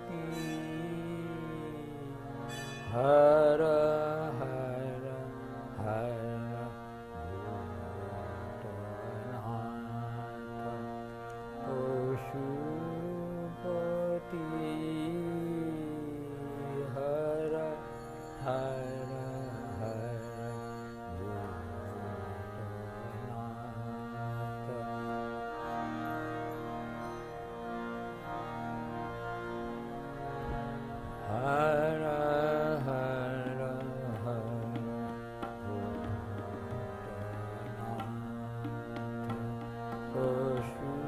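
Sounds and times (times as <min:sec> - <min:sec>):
man singing devotional song: 0:00.0 - 0:27.1, 0:30.2 - 0:41.0
harmonium accompaniment: 0:00.0 - 0:41.0.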